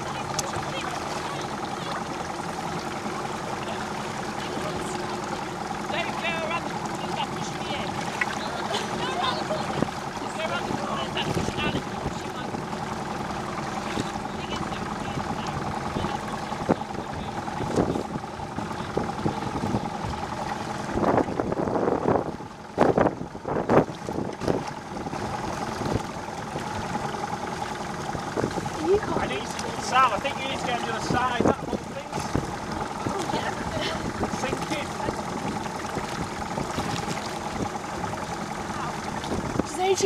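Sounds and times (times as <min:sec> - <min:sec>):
motorboat engine droning: 0:00.0 - 0:40.0
water noise: 0:00.0 - 0:40.0
wind on microphone: 0:17.6 - 0:26.2.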